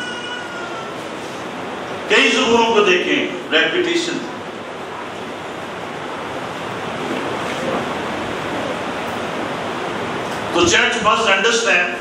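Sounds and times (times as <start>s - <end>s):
room and microphone hiss: 0.0s - 12.0s.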